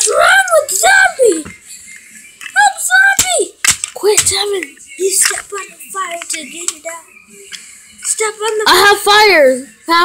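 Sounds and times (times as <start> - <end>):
sharp clicks: 2.4 - 5.5.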